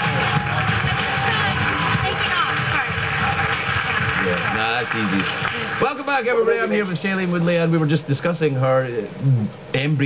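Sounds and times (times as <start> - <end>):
audience applause on television: 0.0 - 7.8.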